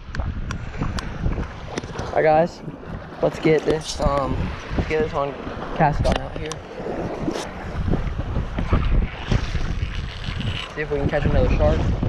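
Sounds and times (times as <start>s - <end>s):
water swishing around wading legs: 0.0s - 12.0s
wind buffeting microphone: 0.0s - 12.0s.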